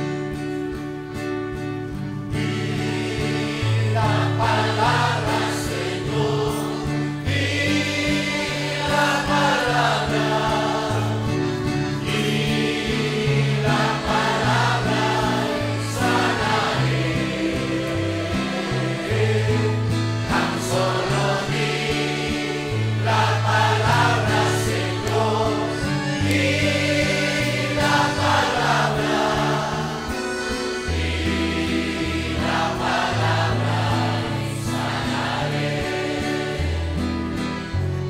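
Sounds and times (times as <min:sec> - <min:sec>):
congregation singing: 0:02.2 - 0:38.0.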